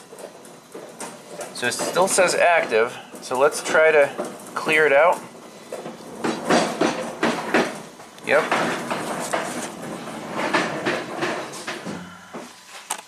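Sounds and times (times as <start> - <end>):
sharp clicks and knocks: 5.7 - 12.0
man speaking: 8.2 - 8.5.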